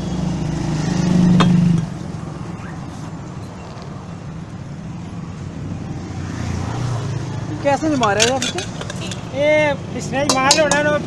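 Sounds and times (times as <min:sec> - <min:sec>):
street traffic hum: 0:00.0 - 0:11.0.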